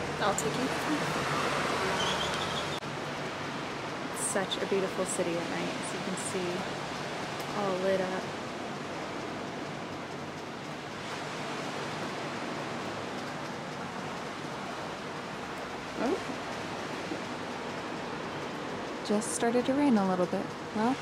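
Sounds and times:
rushing outdoor ambience: 0:00.0 - 0:21.0.

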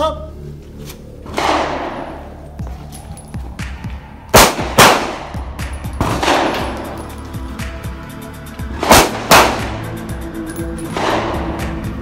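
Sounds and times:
background music: 0:00.0 - 0:12.0
pistol shots ringing: 0:04.3 - 0:07.1, 0:08.8 - 0:09.8.

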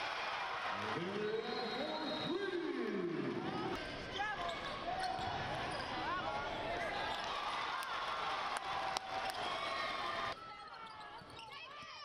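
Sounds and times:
sneakers squeaking on court: 0:04.0 - 0:07.3, 0:10.4 - 0:12.0.

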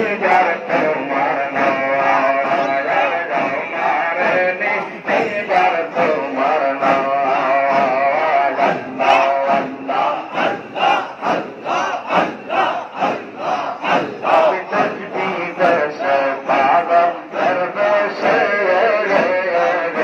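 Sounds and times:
crowd of men chanting: 0:00.0 - 0:20.0.

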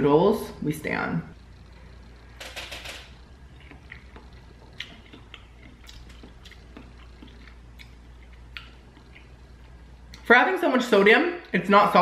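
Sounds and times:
person chewing: 0:03.2 - 0:10.2.

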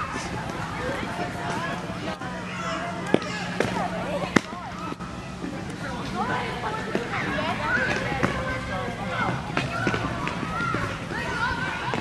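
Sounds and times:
young voices chattering: 0:00.0 - 0:12.0.

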